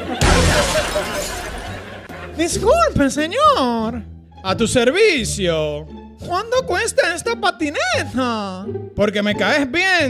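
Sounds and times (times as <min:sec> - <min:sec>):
crashing shattering sound effect: 0:00.1 - 0:02.1.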